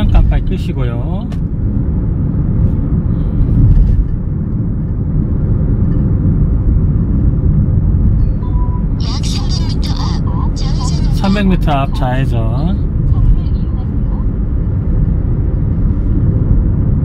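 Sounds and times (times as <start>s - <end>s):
car road and engine rumble: 0.0s - 17.0s
person speaking: 9.0s - 12.5s.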